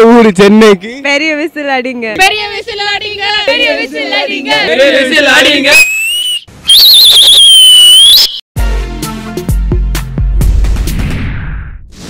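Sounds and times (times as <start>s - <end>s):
loud high whistle: 5.8s - 8.4s.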